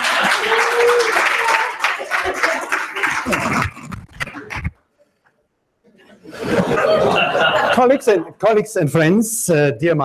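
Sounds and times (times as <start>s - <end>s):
audience clapping: 0.0s - 4.7s.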